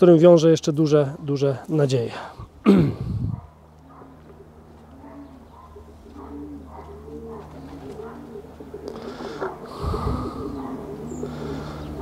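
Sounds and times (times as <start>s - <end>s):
steady low hum: 1.2s - 12.0s
pigeon cooing: 2.9s - 12.0s.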